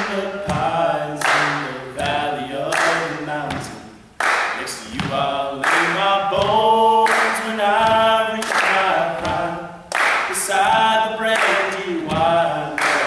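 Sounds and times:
male group singing in harmony: 0:00.0 - 0:03.9, 0:04.6 - 0:13.0.

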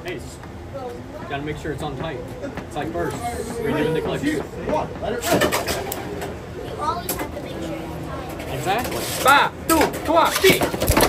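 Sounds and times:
background voices talking: 0:00.0 - 0:11.0.

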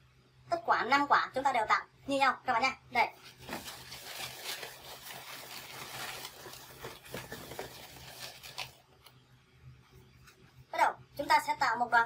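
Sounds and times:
balloons rubbing together: 0:03.3 - 0:08.8.

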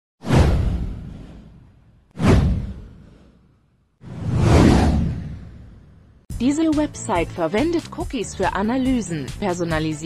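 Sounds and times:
whoosh: 0:00.2 - 0:06.3
low rumble: 0:04.0 - 0:06.3.

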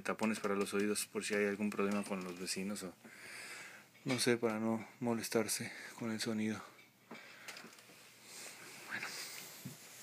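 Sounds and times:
man speaking: 0:00.0 - 0:03.0.

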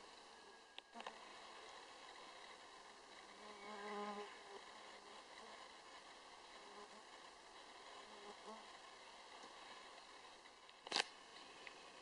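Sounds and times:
flying insect buzzing: 0:00.0 - 0:10.0
faint steady hiss: 0:00.0 - 0:12.0.

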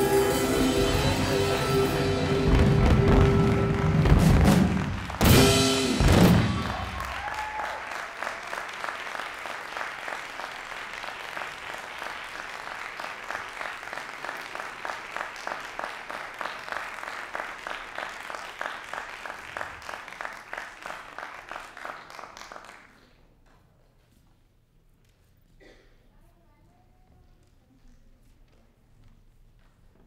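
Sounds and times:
audience applauding: 0:00.0 - 0:23.2.

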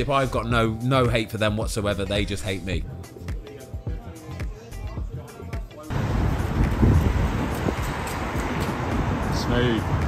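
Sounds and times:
road traffic passing: 0:05.8 - 0:10.0
wind on microphone: 0:05.9 - 0:10.0.

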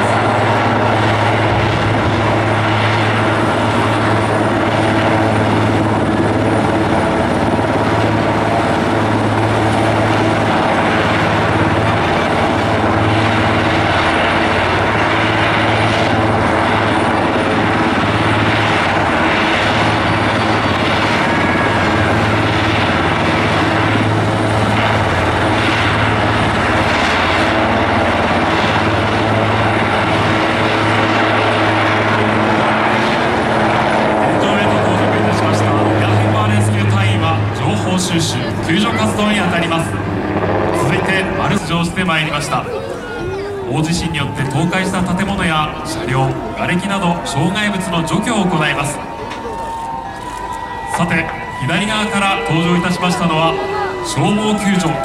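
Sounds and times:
helicopter hovering: 0:00.0 - 0:55.0.

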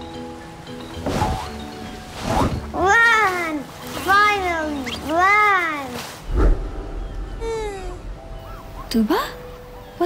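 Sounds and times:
brief low thump: 0:06.3 - 0:07.8.

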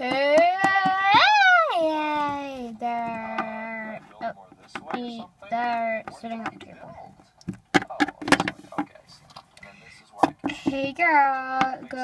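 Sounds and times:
child murmuring: 0:00.0 - 0:04.0.

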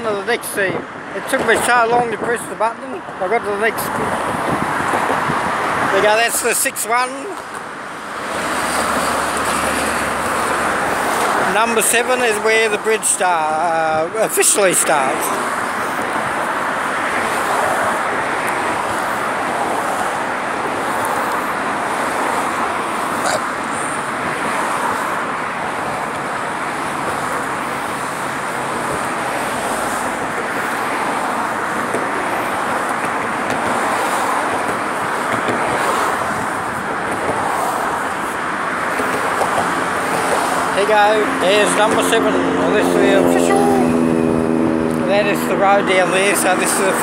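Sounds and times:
road traffic noise: 0:00.0 - 0:47.0.

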